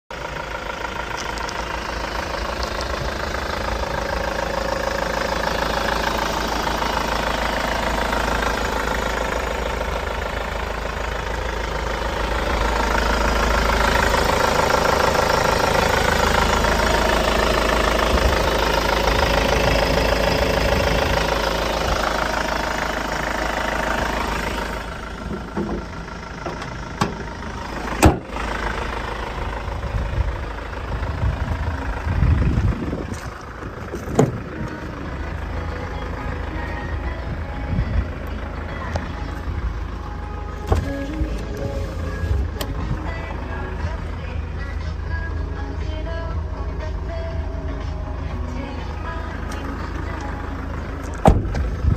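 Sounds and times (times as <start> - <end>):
van engine idling: 0.1 - 51.9.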